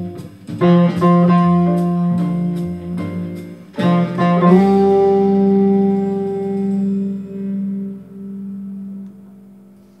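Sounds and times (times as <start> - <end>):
electric guitar note ringing: 0.0 - 10.0.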